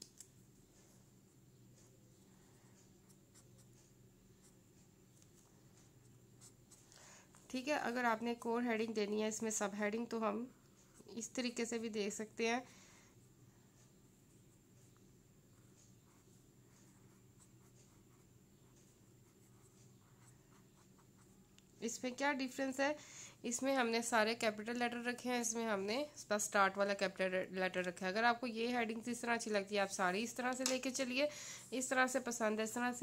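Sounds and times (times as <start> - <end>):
pen scratching on paper: 2.9 - 4.6, 15.5 - 21.4.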